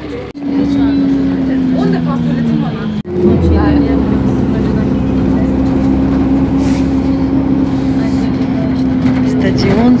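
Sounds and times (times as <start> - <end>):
bus engine humming: 0.0 - 10.0
road noise: 0.0 - 10.0.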